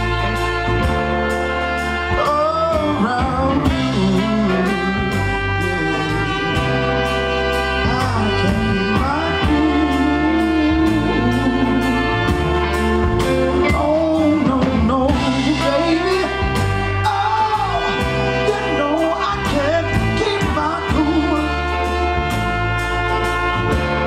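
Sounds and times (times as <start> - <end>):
bass: 0.0 - 24.0
drums keeping a steady beat: 0.0 - 24.0
horn section holding chords: 0.0 - 24.0
keyboard: 0.0 - 24.0
man singing lead vocal: 2.0 - 22.6.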